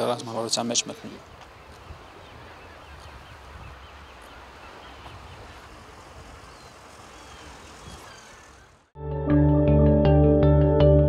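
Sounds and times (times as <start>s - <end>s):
small birds chirping: 0.0s - 8.9s.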